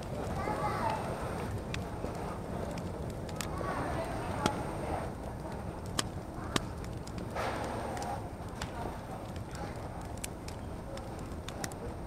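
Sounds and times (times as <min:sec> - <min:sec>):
light clicks and clatter: 0:00.0 - 0:04.6, 0:05.4 - 0:12.0.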